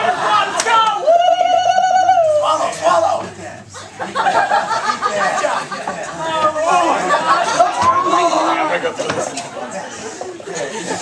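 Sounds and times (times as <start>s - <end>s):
excited shouting: 0.0s - 3.3s, 4.9s - 9.0s.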